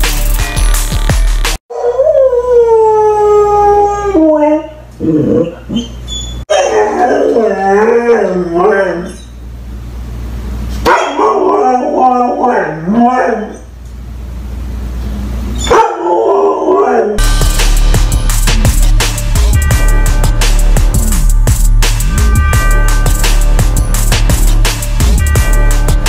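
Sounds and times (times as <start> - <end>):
dog howling: 1.7 - 9.2, 11.0 - 13.6, 15.6 - 17.2.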